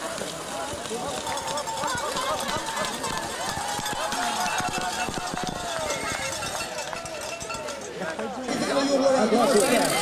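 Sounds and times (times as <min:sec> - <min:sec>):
spectators shouting and cheering: 0:00.0 - 0:10.0.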